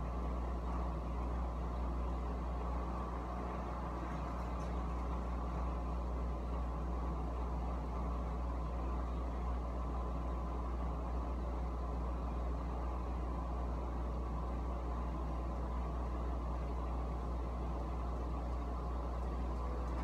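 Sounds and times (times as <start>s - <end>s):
appliance hum and rush: 0.0s - 20.0s.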